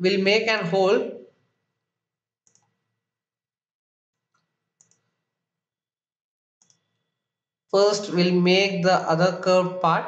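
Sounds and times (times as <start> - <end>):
faint computer mouse click: 2.5 - 2.8, 4.4 - 5.1, 6.6 - 6.9.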